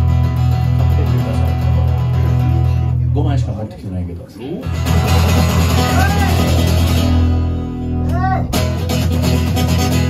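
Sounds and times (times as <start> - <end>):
acoustic guitar strumming chords: 0.0 - 3.1, 4.6 - 10.0
acoustic bass guitar low notes: 0.0 - 3.6, 4.6 - 10.0.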